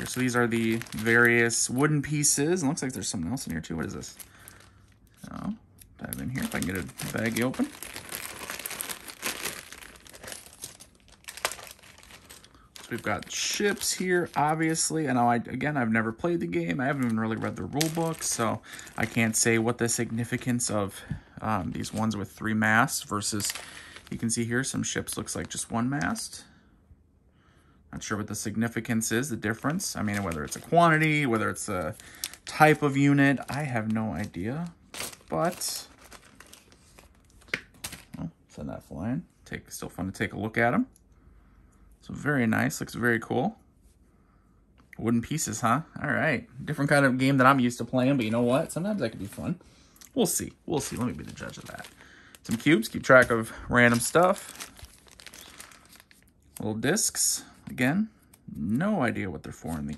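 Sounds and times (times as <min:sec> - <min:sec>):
plastic bag crinkling: 0:00.0 - 0:05.0, 0:06.0 - 0:20.8, 0:21.6 - 0:26.1, 0:29.3 - 0:38.2, 0:50.2 - 0:56.7.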